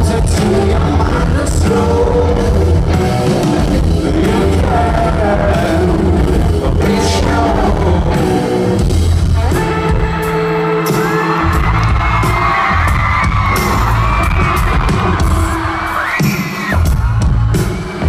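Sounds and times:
lead electric guitar: 0.0s - 15.9s
bass: 0.0s - 18.0s
pounding drums: 0.0s - 18.0s
crowd cheering: 10.2s - 18.0s.

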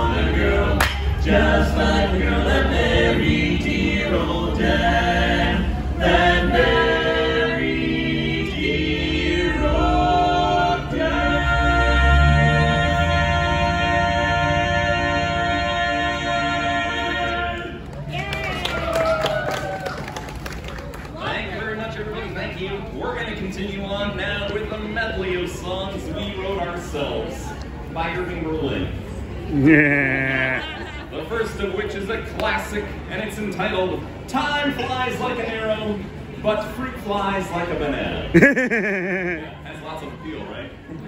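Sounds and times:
men singing in close harmony: 0.0s - 17.8s
people clapping: 17.8s - 21.4s.

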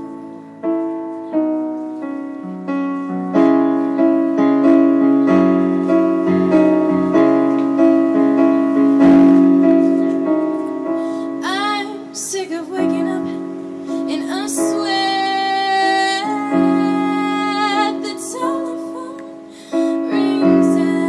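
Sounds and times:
slow piano chords: 0.0s - 21.0s
woman singing: 11.4s - 21.0s.

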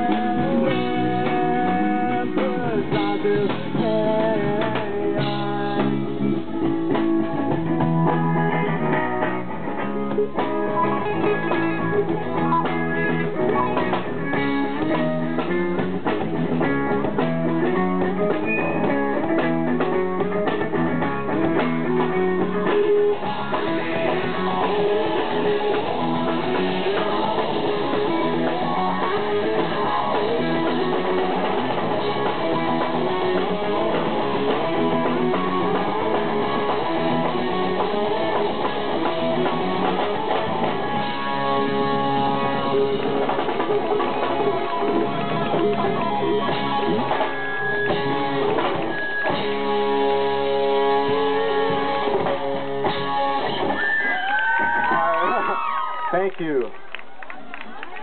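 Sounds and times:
live rock band playing: 0.0s - 58.0s.

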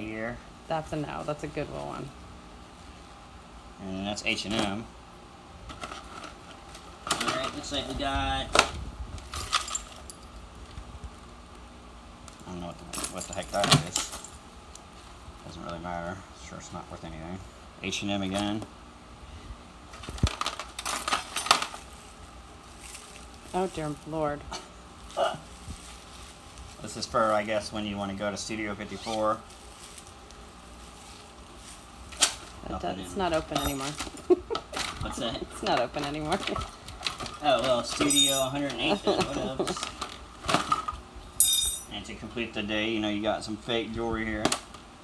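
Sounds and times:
jewelry clinking: 33.4s - 34.2s, 37.3s - 39.4s, 41.4s - 41.9s.

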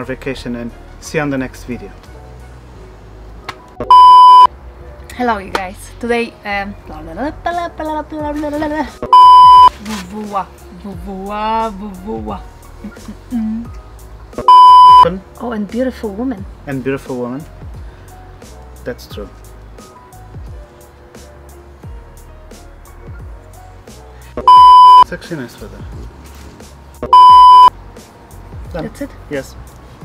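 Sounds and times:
high-pitched test-tone beep: 3.8s - 4.5s, 9.1s - 9.7s, 14.4s - 15.1s, 24.5s - 25.1s, 27.1s - 27.7s
background music with beat: 7.5s - 15.4s, 17.4s - 29.0s.

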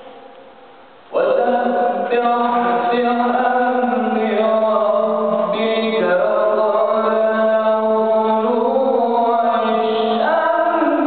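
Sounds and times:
man chanting melodically: 1.1s - 11.0s.

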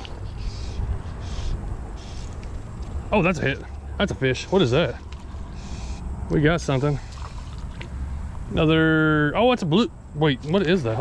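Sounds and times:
wind buffeting microphone: 0.0s - 3.9s.

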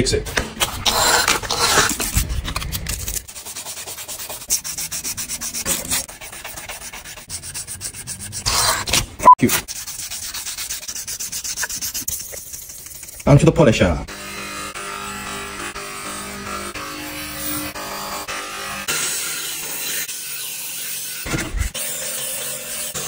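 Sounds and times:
knife blade rubbed on sandpaper: 0.6s - 13.5s.

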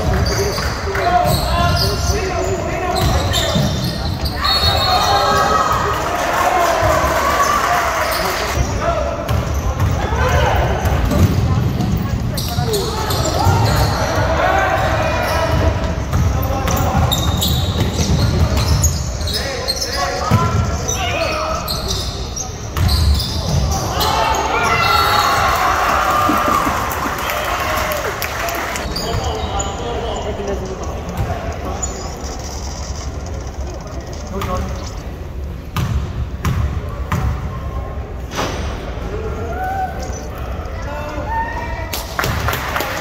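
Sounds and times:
people talking and shouting: 0.0s - 43.0s.

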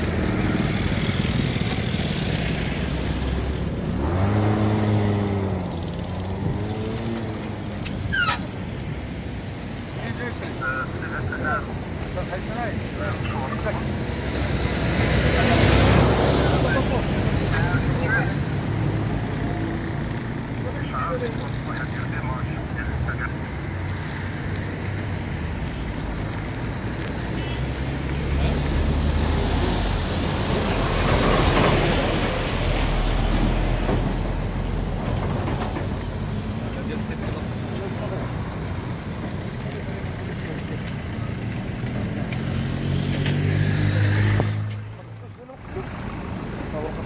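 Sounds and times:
road traffic: 0.0s - 47.0s
vehicle engines running: 0.0s - 47.0s
vehicle passing: 0.0s - 47.0s
voices talking: 3.8s - 47.0s.

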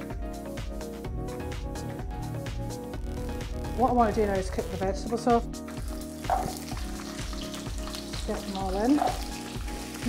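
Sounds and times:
vegetables sizzling in hot oil: 4.0s - 10.0s.

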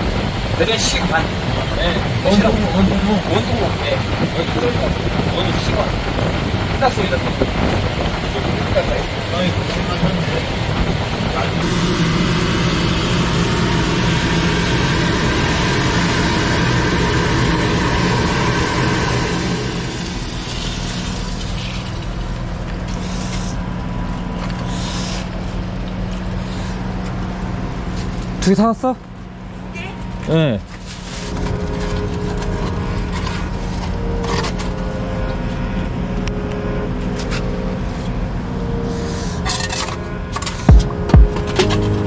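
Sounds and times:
pump motor humming: 11.4s - 24.7s.

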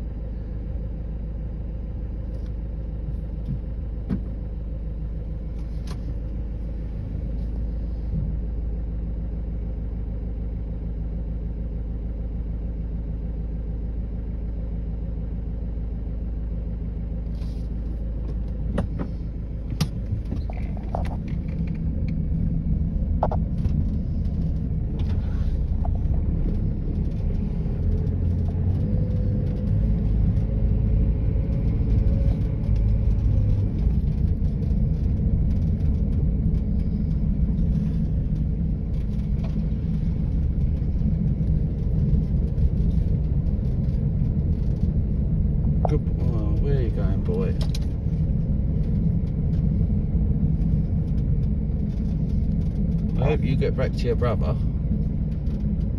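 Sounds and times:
car engine rumble: 0.0s - 55.9s.

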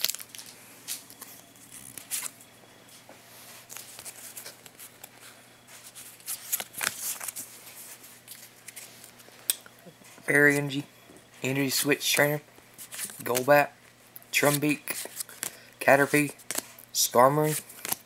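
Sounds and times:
trading cards rustling and clicking: 0.0s - 2.4s, 3.7s - 9.3s, 11.6s - 13.6s, 14.4s - 18.0s.

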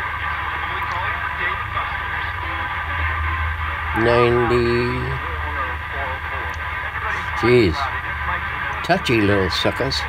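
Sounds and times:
garbled radio broadcast: 0.0s - 10.0s
radio speaker low hum: 0.0s - 10.0s
radio tuning whistles: 0.0s - 10.0s.

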